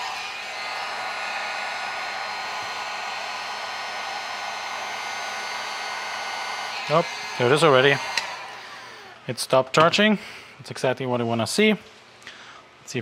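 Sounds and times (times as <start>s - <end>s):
heat gun fan blowing air: 0.0s - 10.1s.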